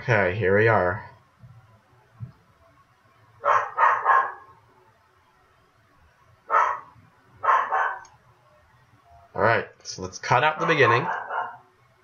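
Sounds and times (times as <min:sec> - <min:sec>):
dog barking: 0:03.4 - 0:04.6, 0:06.5 - 0:08.1, 0:10.5 - 0:11.7.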